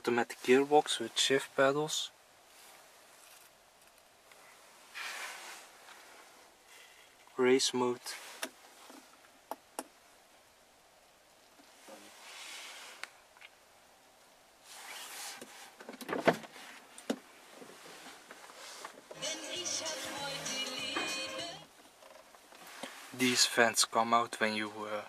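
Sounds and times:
music: 0:19.2 - 0:21.7.

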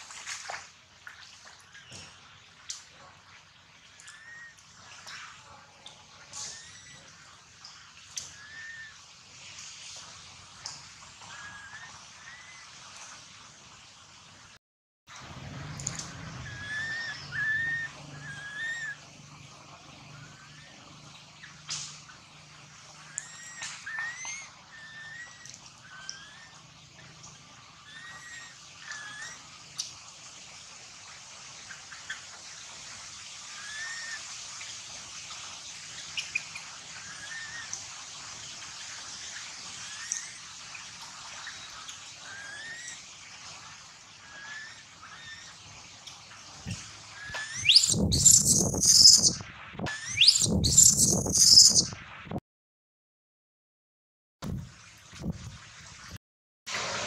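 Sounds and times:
outdoor ambience hiss: 0:00.0 - 0:52.3, 0:54.5 - 0:57.0
high whistle-like animal chirps: 0:08.3 - 0:09.0, 0:15.9 - 0:19.1, 0:23.1 - 0:26.6, 0:47.1 - 0:52.0.

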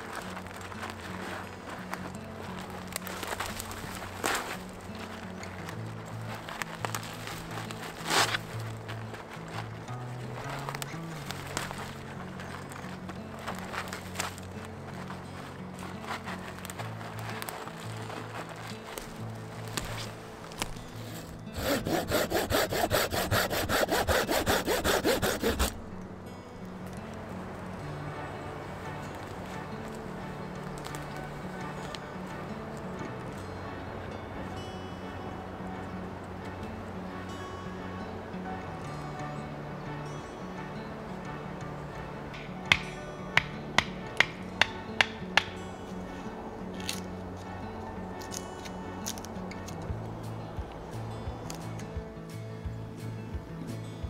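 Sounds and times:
dry twigs crackling and snapping: 0:00.0 - 0:33.4, 0:41.9 - 0:52.2
soft background music: 0:00.0 - 0:54.0
folding saw cutting branch: 0:18.3 - 0:25.9, 0:42.4 - 0:45.6.

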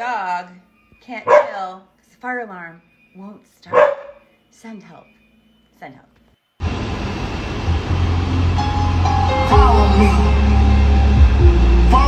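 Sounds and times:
car road and engine rumble: 0:06.6 - 0:12.0.

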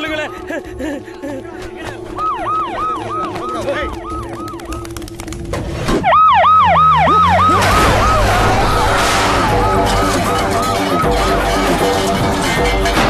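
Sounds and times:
police siren whooping: 0:01.9 - 0:05.4, 0:06.0 - 0:12.2
loud rushing noise: 0:07.4 - 0:12.5.

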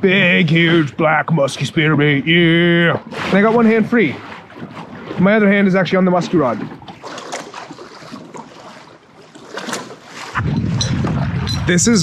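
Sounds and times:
waves slapping kayak hull: 0:00.0 - 0:12.0.

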